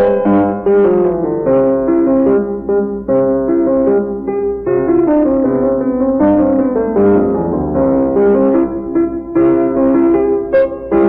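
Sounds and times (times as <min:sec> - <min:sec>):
solo piano classical piece: 0:00.0 - 0:11.0.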